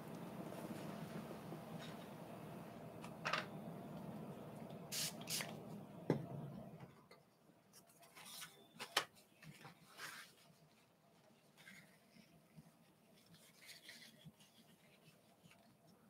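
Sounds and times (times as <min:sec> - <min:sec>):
low steady hum: 0:00.0 - 0:08.0
brushing handling noises: 0:09.4 - 0:16.0.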